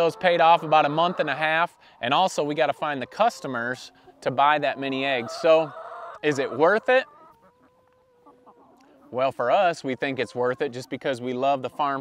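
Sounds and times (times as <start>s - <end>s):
hen calling: 0.0s - 12.0s.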